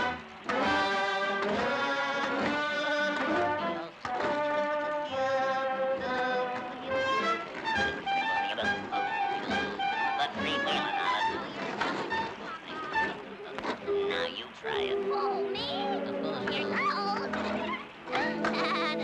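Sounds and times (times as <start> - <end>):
brass-led orchestral music: 0.0 - 13.2.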